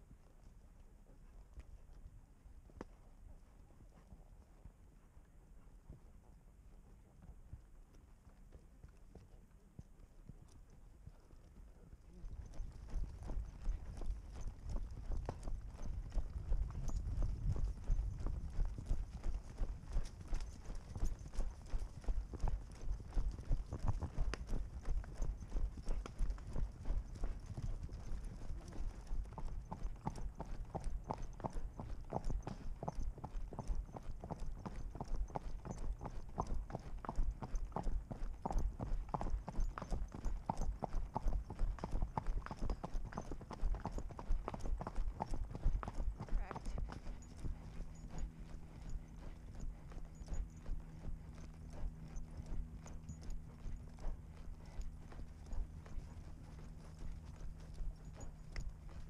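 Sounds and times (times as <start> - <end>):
horse hoofbeats on dirt trail: 0.0 - 59.0.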